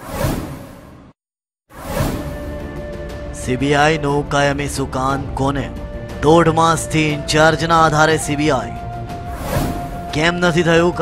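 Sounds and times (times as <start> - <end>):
swoosh sound effect: 1.8 - 2.5, 9.3 - 10.1
background music: 1.8 - 11.0.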